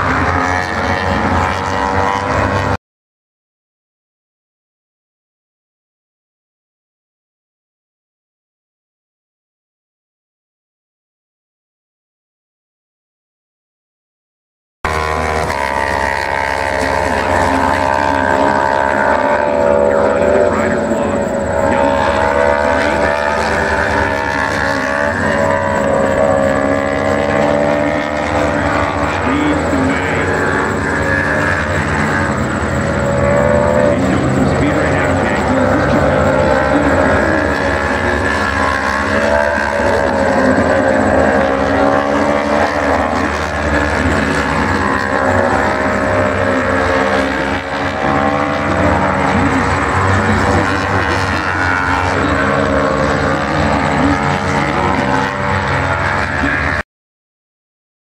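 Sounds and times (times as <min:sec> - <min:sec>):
racing motorcycle engines: 0:00.0 - 0:02.8, 0:14.8 - 0:56.8.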